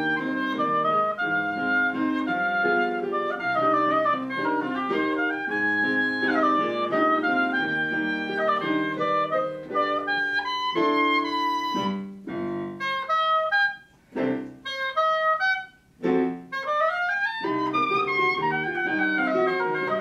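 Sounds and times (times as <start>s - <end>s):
oboe solo: 0.0s - 20.0s
piano accompaniment: 0.0s - 20.0s.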